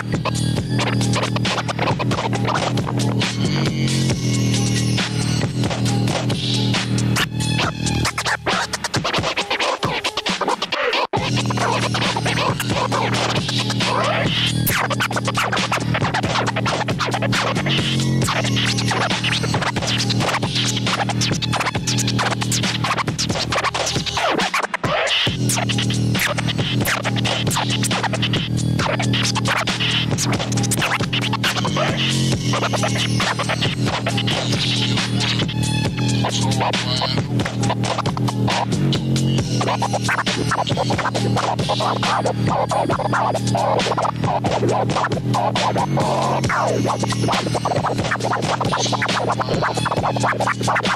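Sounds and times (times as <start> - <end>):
backing beat: 0.0 - 50.9
vinyl record scratching: 0.0 - 50.9.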